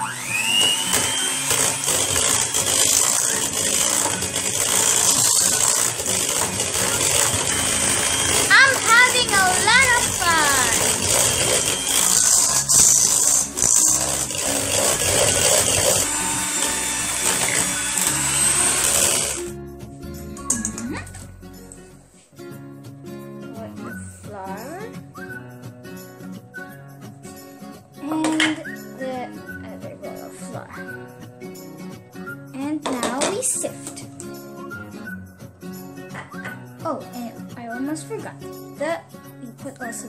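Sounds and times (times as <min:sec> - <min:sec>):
electric hand mixer whisking batter: 0:00.0 - 0:19.5.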